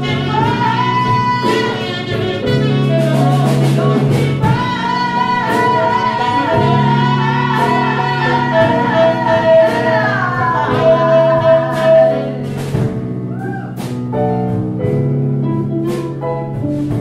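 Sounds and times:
woman singing long notes: 0.0s - 12.4s
jazz ensemble playing: 0.0s - 17.0s.

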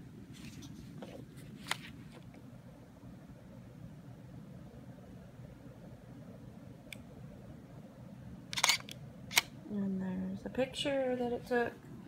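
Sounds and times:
camera handling rumble: 0.4s - 2.3s, 8.5s - 9.5s
camera shutter clicks: 8.5s - 9.5s.

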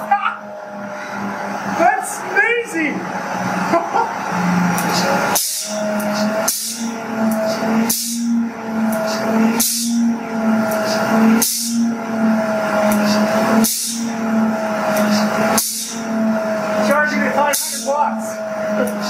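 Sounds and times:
turbine hum and whine: 0.0s - 19.0s.

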